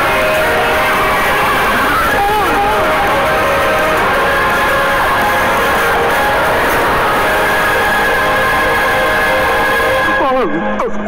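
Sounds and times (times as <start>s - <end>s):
cartoon music: 0.0s - 10.4s
rushing sound effect: 0.0s - 10.8s.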